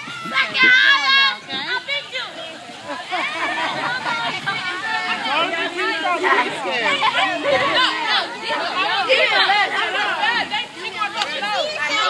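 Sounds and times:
children chattering and shouting: 0.0 - 12.0.

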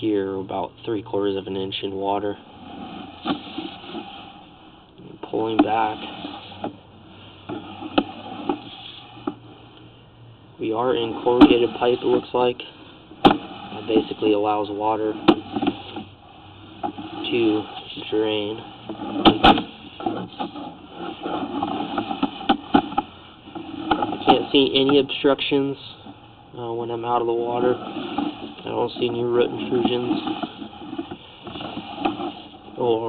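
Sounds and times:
steady electrical hum: 0.0 - 33.0.

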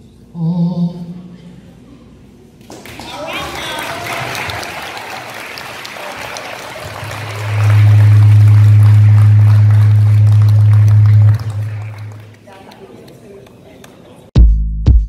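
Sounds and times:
loud steady low hum: 0.0 - 2.6, 5.4 - 12.4
audience applauding: 2.6 - 13.2.

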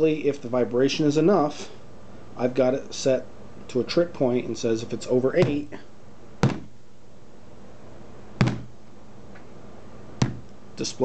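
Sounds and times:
hand banging on tabletop: 5.4 - 5.8, 6.4 - 6.7, 8.4 - 8.7, 10.2 - 10.5.

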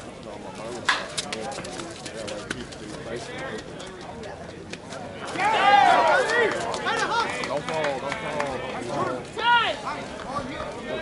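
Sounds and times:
low murmured voices: 0.0 - 11.0.

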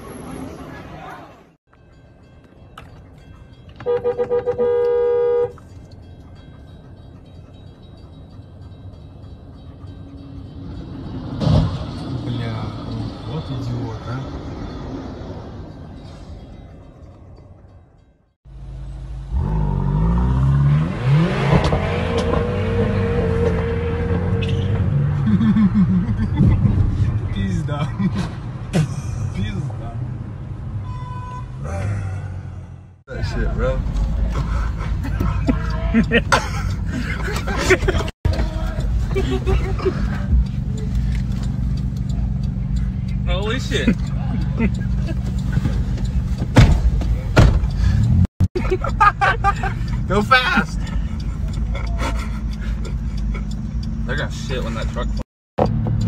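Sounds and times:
traffic noise: 0.0 - 56.0
car horn blast: 3.8 - 5.6, 30.8 - 31.6
engine and road noise inside car: 18.5 - 56.0.

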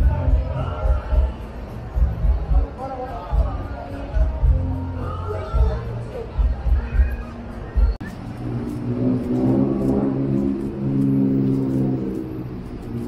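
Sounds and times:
bar music with heavy bass: 0.0 - 11.0
vehicle engine passing: 8.0 - 13.0.

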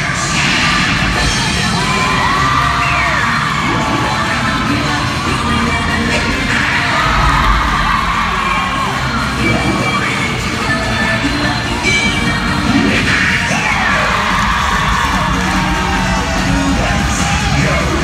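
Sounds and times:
cheerleading music with heavy bass: 0.0 - 18.0
crowd cheering and yelling: 0.0 - 18.0.

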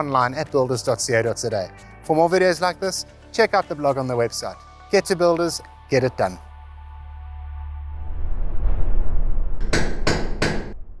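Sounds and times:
low boom: 7.8 - 11.0
hammer strikes: 9.6 - 10.8.

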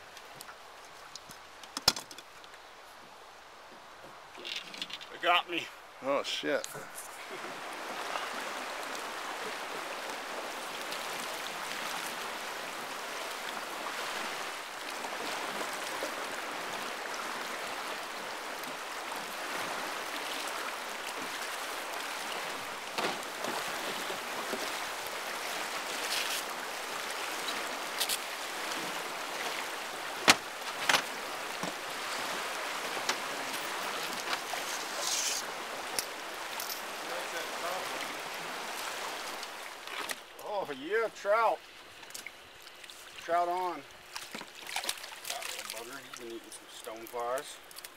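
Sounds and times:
river current rushing: 2.4 - 47.9
sharp knocks: 30.2 - 31.0.

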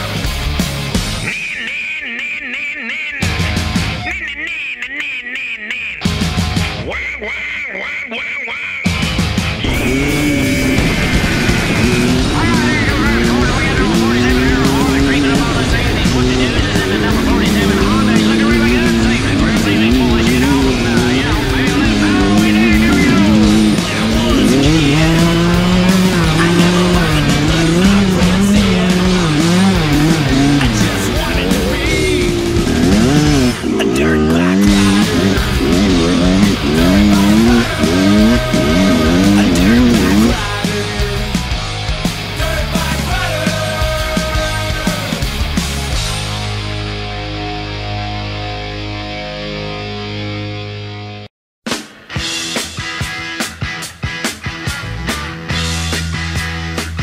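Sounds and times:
dirt bike engine revving: 9.1 - 46.4.

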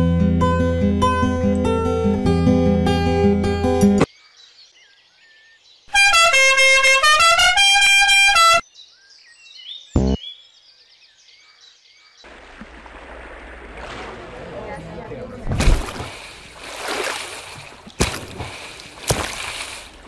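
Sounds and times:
plucked string music: 0.0 - 4.1
faint birdsong: 4.0 - 6.3, 8.4 - 14.1
loud honking horn-like tone: 5.9 - 8.6
water noise: 12.3 - 20.0
short thump: 15.5 - 16.2.

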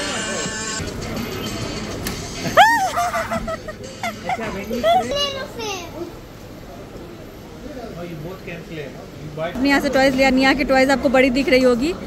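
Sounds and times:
children calling and chattering: 0.0 - 6.7.

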